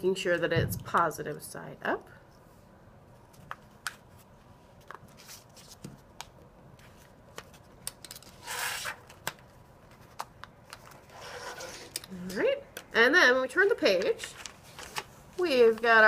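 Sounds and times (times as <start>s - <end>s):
paper rustling: 13.7s - 16.0s.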